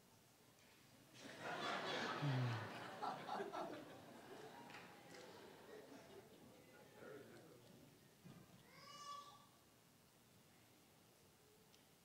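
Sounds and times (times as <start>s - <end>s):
faint high-pitched vocal call: 8.6s - 9.6s.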